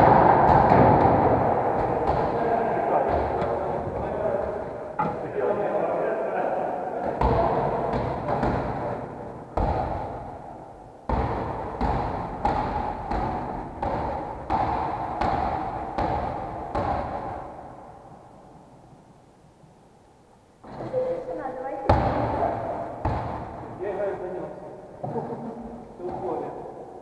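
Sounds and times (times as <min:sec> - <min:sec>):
basketball bouncing on wooden floor: 0:04.5 - 0:05.2, 0:11.1 - 0:17.4, 0:21.9 - 0:22.3, 0:23.0 - 0:23.7.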